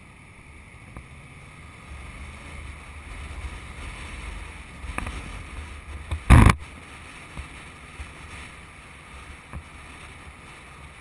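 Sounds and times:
motorcycle engine rumble: 0.0 - 11.0
wind noise on microphone: 0.9 - 11.0.

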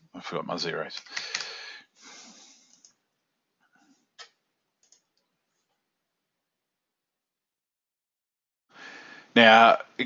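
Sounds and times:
computer keyboard clicks: 1.0 - 1.6, 2.7 - 3.0, 4.2 - 5.2.

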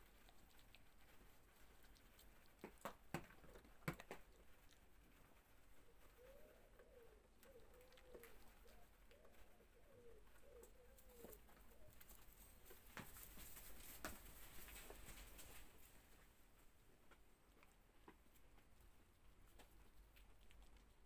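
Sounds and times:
faint bird cooing: 5.4 - 12.7.

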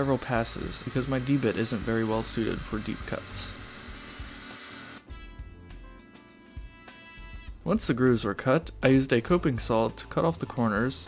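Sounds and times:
milling machine cutting aluminium: 0.0 - 5.0
background music: 0.0 - 11.0.

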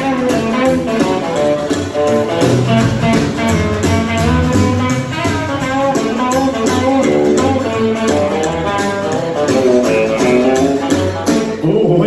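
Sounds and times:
rockabilly band playing instrumental: 0.0 - 12.0.

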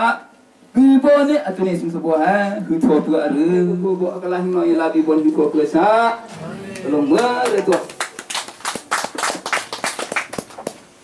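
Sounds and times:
hand clapping: 6.8 - 10.8.

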